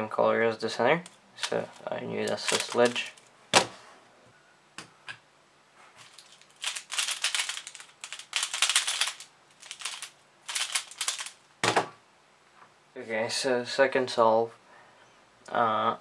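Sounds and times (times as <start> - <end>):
plastic puzzle clicking: 6.2 - 11.4.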